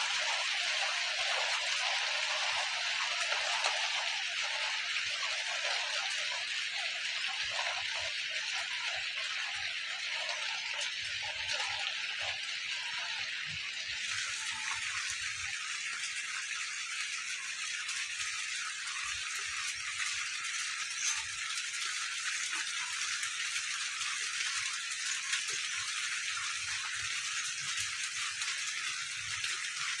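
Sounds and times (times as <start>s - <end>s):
steady rain falling: 0.0s - 30.0s.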